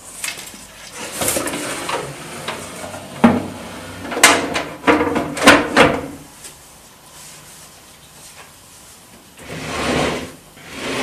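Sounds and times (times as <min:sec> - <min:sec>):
wooden table segments sliding: 0:09.4 - 0:11.0.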